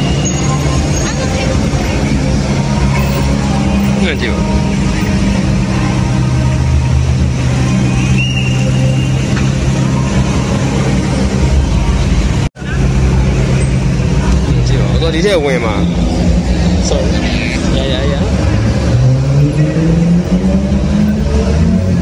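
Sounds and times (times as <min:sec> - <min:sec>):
crowd chatter: 0:00.0 - 0:22.0
sports car engines idling: 0:00.0 - 0:22.0.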